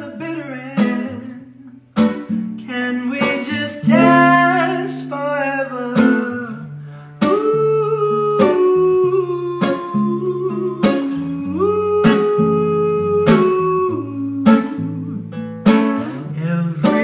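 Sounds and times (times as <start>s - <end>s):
classical guitar strummed chords: 0.0s - 17.0s
man singing held notes: 2.6s - 15.2s.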